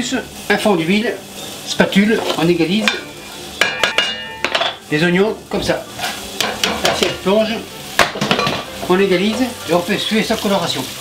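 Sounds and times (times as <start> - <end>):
kitchenware clinking: 2.2 - 4.8, 8.0 - 9.5.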